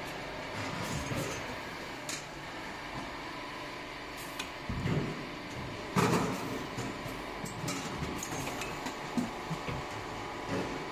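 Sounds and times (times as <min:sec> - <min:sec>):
can-filling machine humming: 0:00.0 - 0:10.9.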